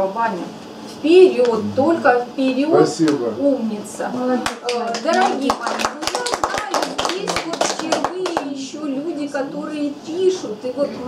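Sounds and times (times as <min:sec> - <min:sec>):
people talking: 0:00.0 - 0:11.0
audience clapping: 0:04.4 - 0:08.7.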